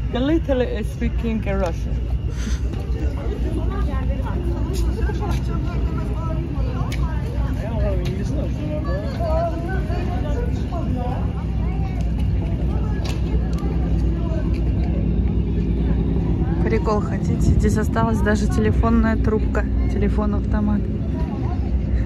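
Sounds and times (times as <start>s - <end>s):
low rumble: 0.0s - 22.0s
people talking: 0.0s - 22.0s.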